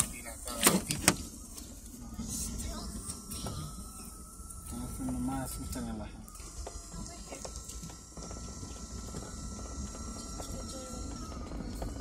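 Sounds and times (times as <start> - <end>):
vehicle cabin rumble: 0.0 - 12.0.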